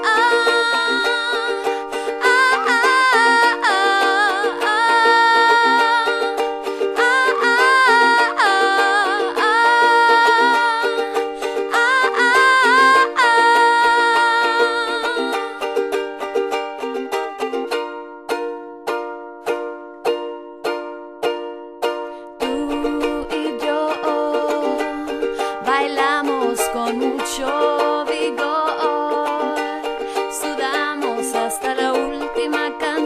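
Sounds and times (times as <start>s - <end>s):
woman singing: 0.0s - 15.8s, 22.3s - 33.0s
ukulele strumming: 0.0s - 33.0s.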